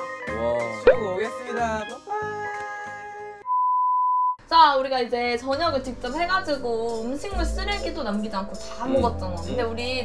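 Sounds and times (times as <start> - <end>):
light background music: 0.0 - 3.0, 4.5 - 10.0
electronic beep tone: 0.9 - 1.1.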